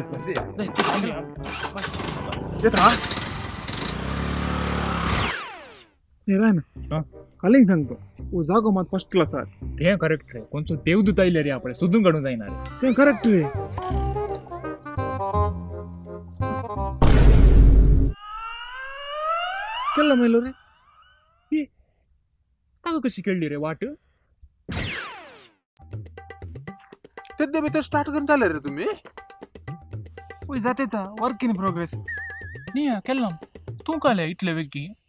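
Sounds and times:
scooter engine running: 2.4 - 5.8
loud crash: 17.0 - 18.8
high falling whoosh: 18.0 - 21.3
rising comedy slide tone: 18.1 - 21.5, 32.1 - 32.8.

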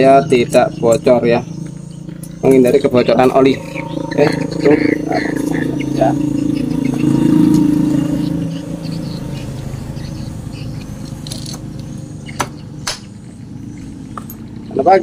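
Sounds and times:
vehicle engine running: 0.0 - 15.0
sharp metal clicks: 10.8 - 13.1.

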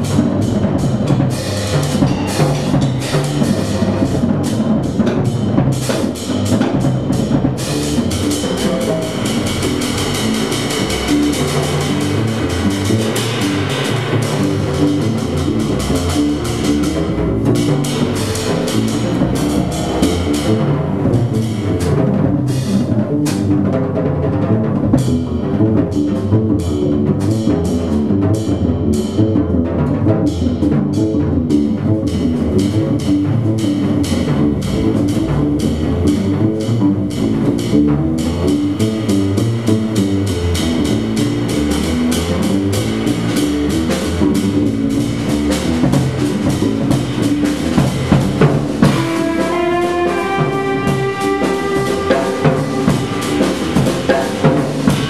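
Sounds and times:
drum kit playing busily: 0.0 - 55.0
upright double bass: 0.0 - 55.0.

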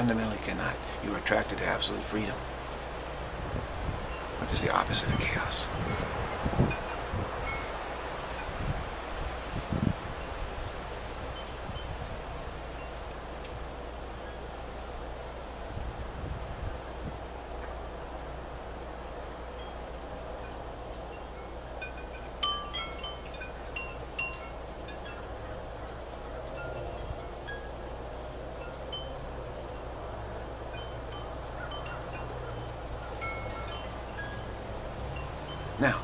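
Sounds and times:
wind: 0.0 - 36.0
wind chimes ringing: 4.0 - 8.7, 19.5 - 36.0.

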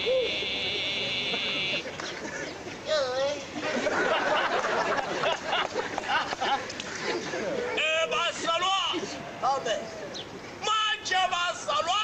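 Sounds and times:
person hooting: 0.0 - 0.8.

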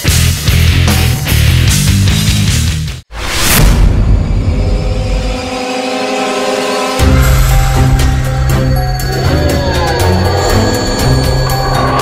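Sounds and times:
sustained steady tones: 4.4 - 12.0.

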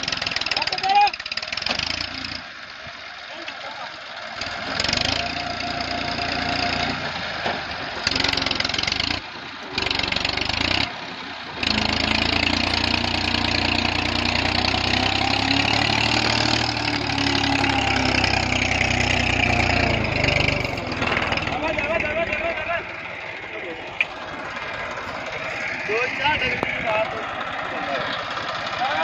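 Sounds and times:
tractor diesel engine: 0.0 - 29.0.

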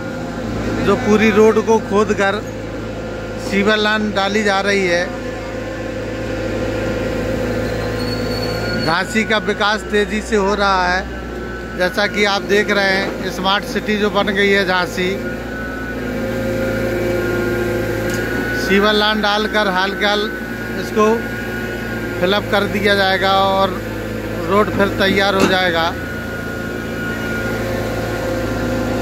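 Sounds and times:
excavator diesel engine running: 0.0 - 29.0.

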